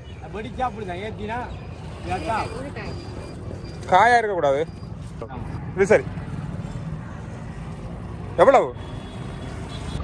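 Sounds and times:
low rumble of road traffic: 0.0 - 10.0.

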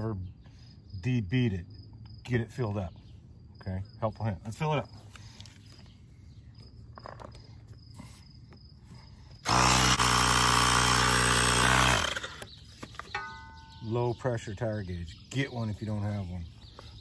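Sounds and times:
faint crickets: 0.0 - 17.0
tire inflator running: 9.4 - 12.6.

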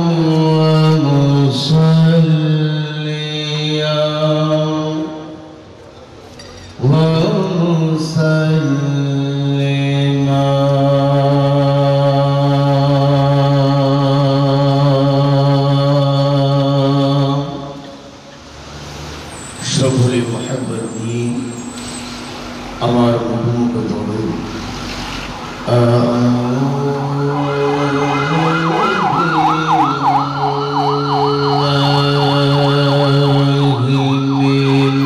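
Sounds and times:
man chanting through microphone: 0.0 - 5.6, 6.8 - 18.0, 19.6 - 21.7, 22.8 - 24.6, 25.6 - 35.0.

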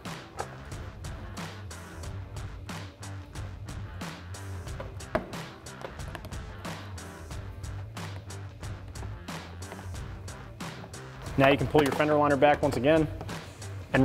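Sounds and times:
music with beat and bass line: 0.0 - 14.0.

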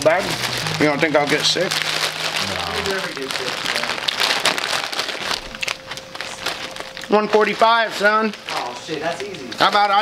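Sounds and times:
plastic snack bag crinkling: 0.0 - 10.0.

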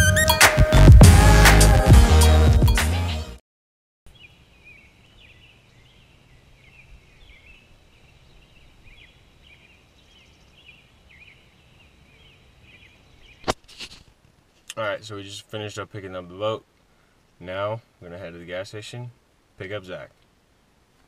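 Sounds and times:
birds chirping: 4.1 - 14.0.

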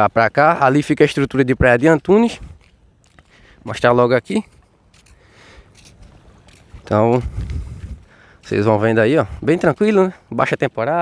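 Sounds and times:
man talking: 0.0 - 2.6, 3.6 - 4.6, 6.8 - 7.4, 8.4 - 11.0
outdoor background noise: 0.0 - 11.0.

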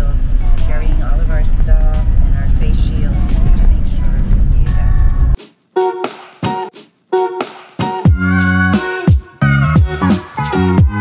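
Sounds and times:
road rumble inside a van: 0.0 - 5.4.

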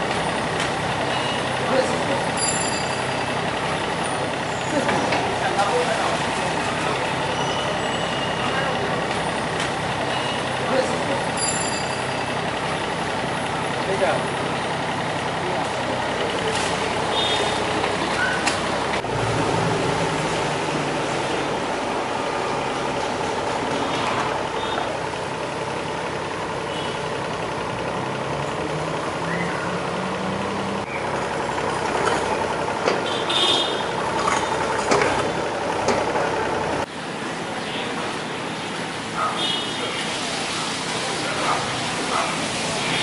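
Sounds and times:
excavator diesel engine running: 0.0 - 43.0.

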